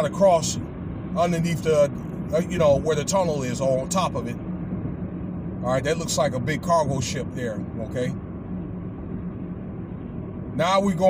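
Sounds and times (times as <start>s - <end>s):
car road noise and engine hum: 0.0s - 11.0s.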